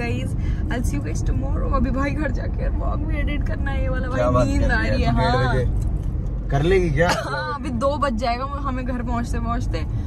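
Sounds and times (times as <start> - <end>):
car driving rumble: 0.0 - 10.0.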